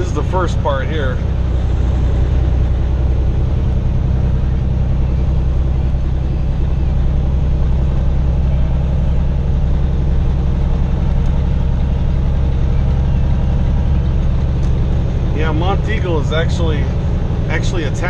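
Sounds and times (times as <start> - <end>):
truck diesel engine droning: 0.0 - 18.0
tyre and road noise: 0.0 - 18.0.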